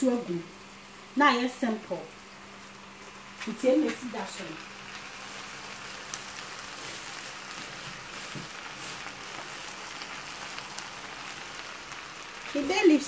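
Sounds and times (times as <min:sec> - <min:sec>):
meat and onions sizzling in pot: 0:00.0 - 0:13.0.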